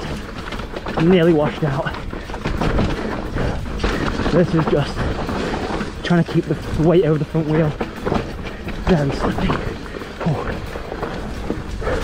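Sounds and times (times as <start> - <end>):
bike knocking and rattling: 0.0 - 12.0
bike tyres on loose dirt: 0.0 - 12.0.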